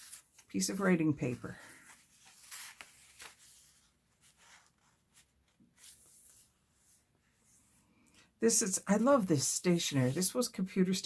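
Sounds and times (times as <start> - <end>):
page turning: 0.0 - 7.0
paper rustling: 0.0 - 7.1.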